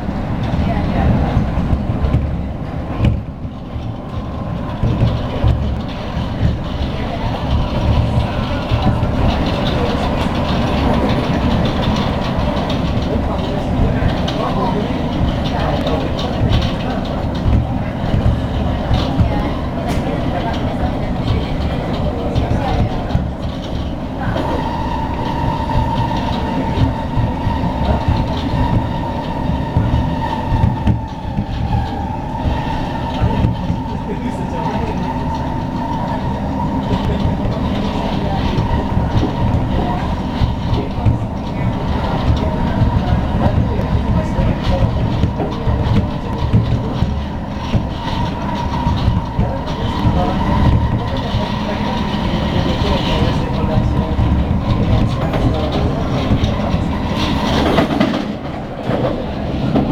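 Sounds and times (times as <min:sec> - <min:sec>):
train wheels rumbling: 0:00.0 - 0:59.9.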